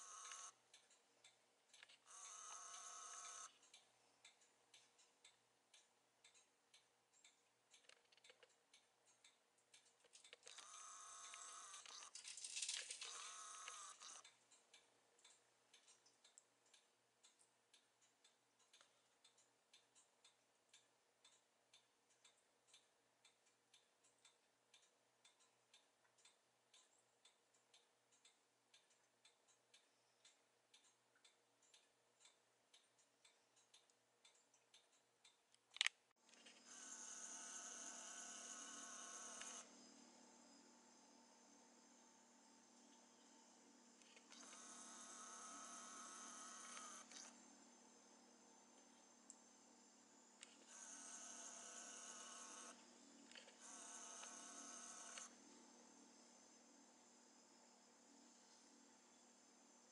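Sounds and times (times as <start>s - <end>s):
faint regular ticking: 0.0s - 36.2s.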